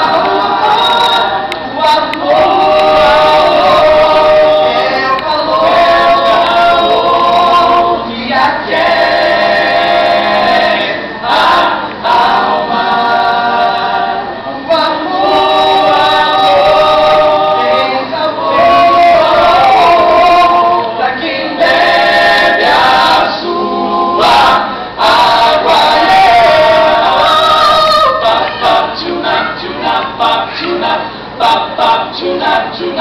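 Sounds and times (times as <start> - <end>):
a cappella vocal harmony: 0.0 - 33.0.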